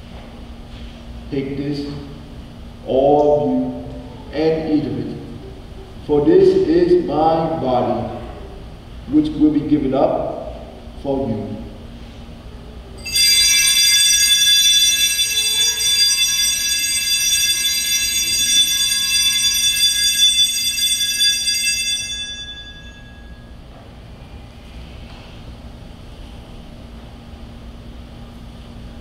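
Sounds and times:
altar bells ringing: 0:13.0 - 0:23.7.

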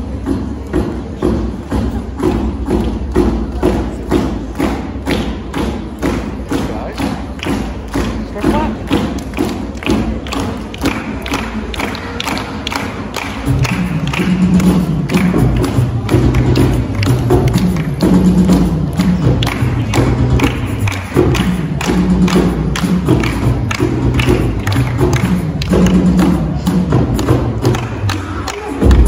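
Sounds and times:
drum beaten in steady rhythm: 0:00.0 - 0:29.0.

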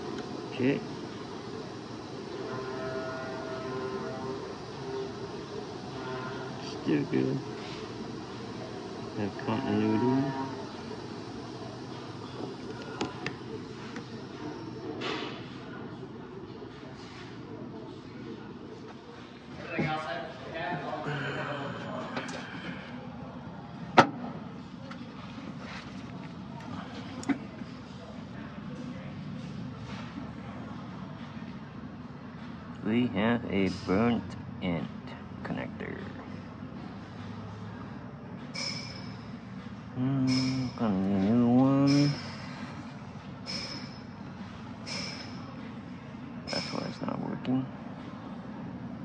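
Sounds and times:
workshop hum and hiss: 0:00.0 - 0:49.0.

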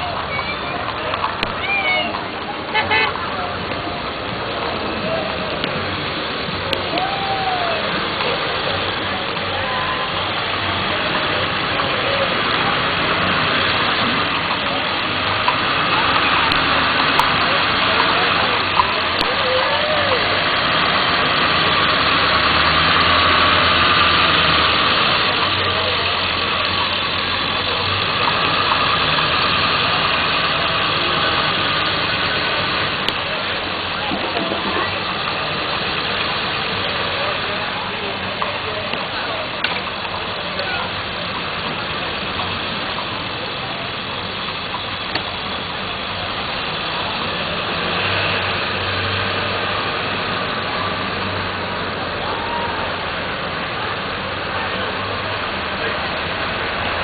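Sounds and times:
crowd chatter: 0:00.0 - 0:57.0
vehicle engines idling: 0:00.0 - 0:57.0.

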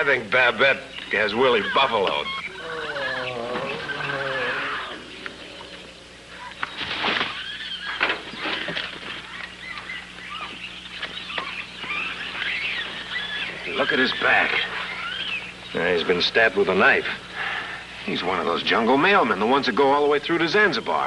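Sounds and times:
bird calls: 0:00.0 - 0:21.0
jungle animal calls: 0:00.0 - 0:21.0
loud shriek: 0:01.7 - 0:05.2.

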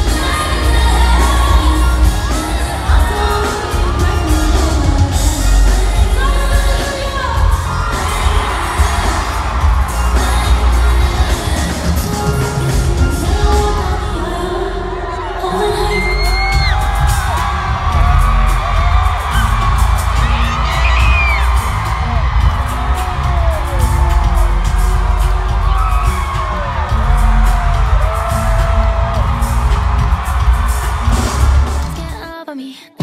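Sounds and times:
woman singing over backing track: 0:00.0 - 0:16.8
crowd cheering and whooping: 0:00.0 - 0:32.0.

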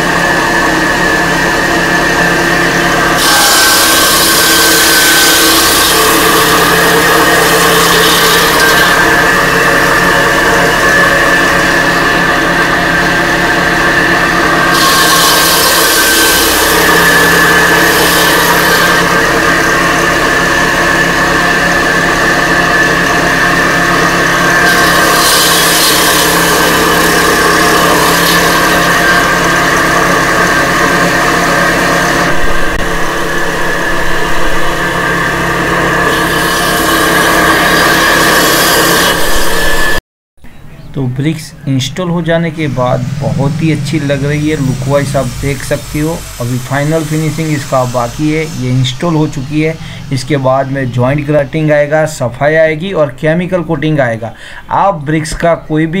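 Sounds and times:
circular saw blade whining: 0:00.0 - 0:40.0, 0:42.0 - 0:52.7
saw grinding into brick: 0:00.0 - 0:40.0, 0:42.9 - 0:50.5.

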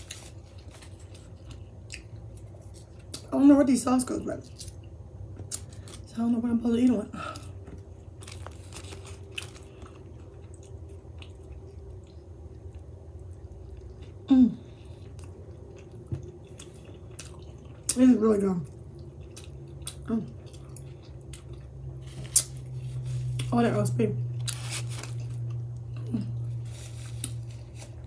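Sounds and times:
faint low hum: 0:00.0 - 0:28.0
close-up chewing: 0:07.4 - 0:18.0, 0:18.6 - 0:23.5, 0:24.3 - 0:28.0.

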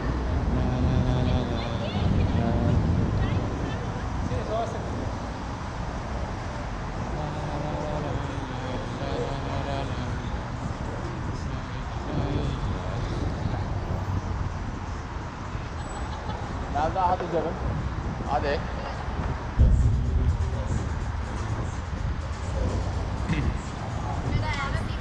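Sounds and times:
passers-by talking: 0:00.0 - 0:25.0
road traffic rumble: 0:00.0 - 0:25.0.

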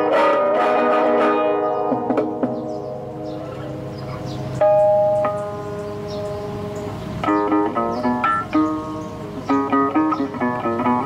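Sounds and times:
classical guitar fingerstyle: 0:00.0 - 0:11.0.

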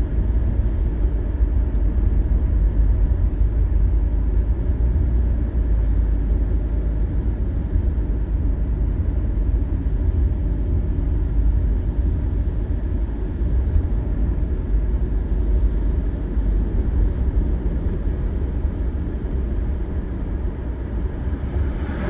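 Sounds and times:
car interior road rumble: 0:00.0 - 0:22.0.

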